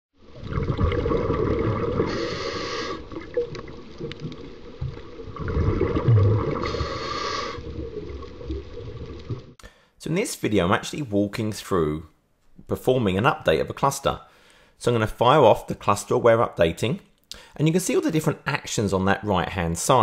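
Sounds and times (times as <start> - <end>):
underwater bubbling and gurgling: 0.2 - 9.6
hissing breaths through regulator: 2.0 - 3.2, 6.6 - 7.7.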